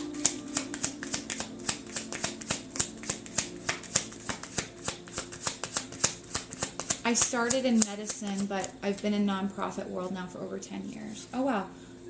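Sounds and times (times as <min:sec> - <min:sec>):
cards being shuffled by hand: 0:00.0 - 0:09.1.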